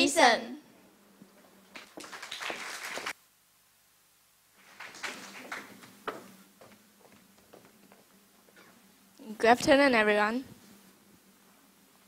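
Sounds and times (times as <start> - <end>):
audience applause: 1.7 - 3.2, 4.6 - 6.3.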